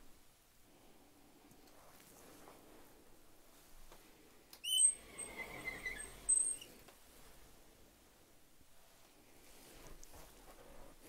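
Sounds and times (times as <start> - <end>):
door hinges squeaking: 4.6 - 6.8
thin whine and scraping: 4.6 - 6.9.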